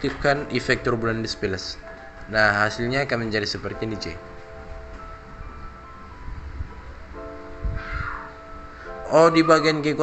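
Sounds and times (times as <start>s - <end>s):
music with held chords: 0.0s - 10.0s.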